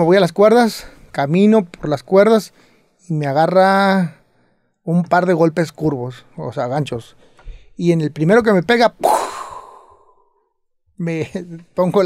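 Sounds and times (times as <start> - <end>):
man making breathy puff sound: 9.0 - 10.2.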